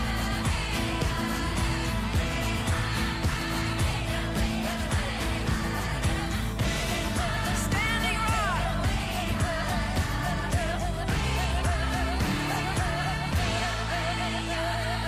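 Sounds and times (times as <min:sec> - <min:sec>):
theme music with singing voice: 0:00.0 - 0:15.0.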